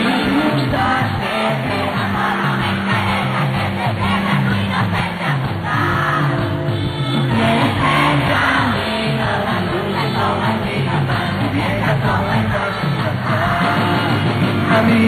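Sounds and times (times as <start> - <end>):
bass line: 0.0 - 15.0
crowd cheering and yelling: 0.0 - 15.0
live band playing: 0.0 - 15.0.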